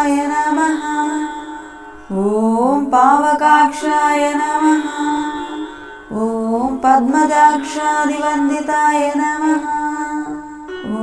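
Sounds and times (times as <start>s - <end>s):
person chanting a sung melody: 0.0s - 11.0s.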